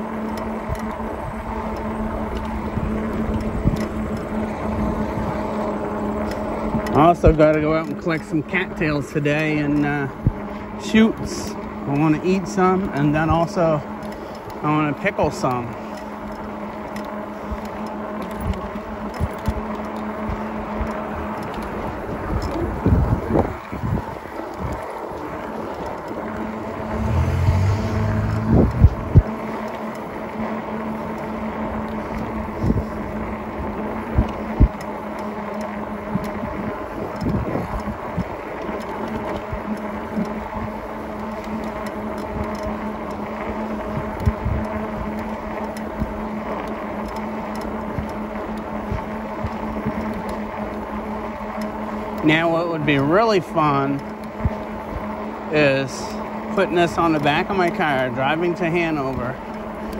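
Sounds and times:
wind buffeting microphone: 0.0s - 14.6s, 17.4s - 30.2s, 31.0s - 52.9s
electric bike motor whining: 0.0s - 59.9s.

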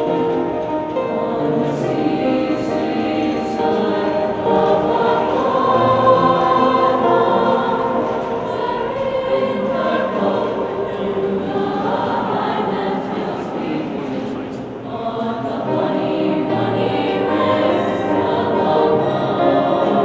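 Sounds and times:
choir singing sustained chords: 0.0s - 20.0s.

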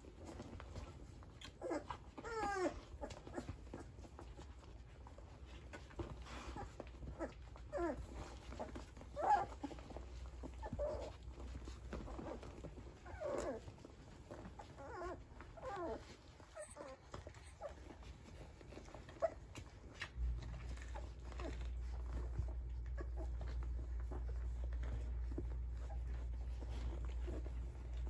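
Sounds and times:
puppies whimpering and squeaking: 0.0s - 28.0s.

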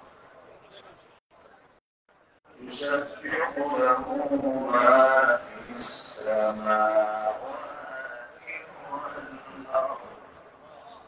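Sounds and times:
man chanting through microphone: 2.5s - 11.0s.

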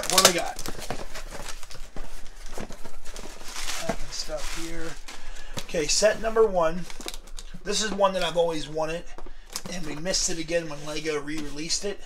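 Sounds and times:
cardboard box rustling: 0.0s - 8.0s.

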